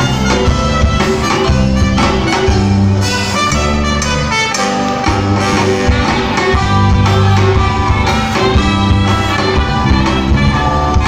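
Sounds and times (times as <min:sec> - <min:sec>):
lively band music: 0:00.0 - 0:11.0.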